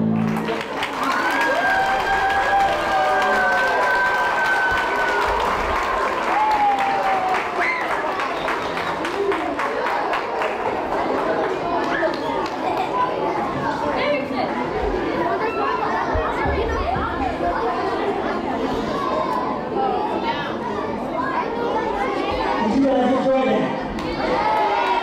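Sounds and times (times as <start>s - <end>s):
children's crowd babble: 0.0s - 25.0s.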